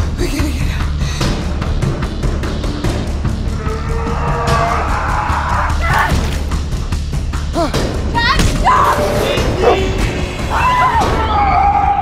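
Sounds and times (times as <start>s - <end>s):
horror soundtrack music: 0.0s - 12.0s
low rumble: 1.5s - 5.8s
animal-like pitched cries: 3.5s - 5.8s.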